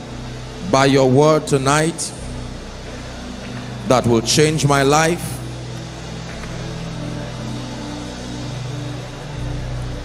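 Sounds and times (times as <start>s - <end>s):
soft sustained keyboard chords: 0.0s - 10.0s.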